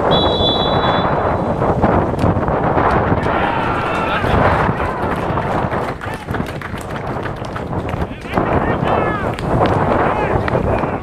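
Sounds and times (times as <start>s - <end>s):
referee's whistle blast: 0.0s - 1.6s
wind rumble on microphone: 0.0s - 11.0s.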